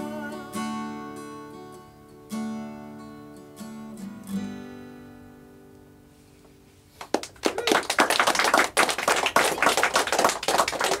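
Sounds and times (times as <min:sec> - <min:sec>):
audience applauding: 0:07.0 - 0:11.0.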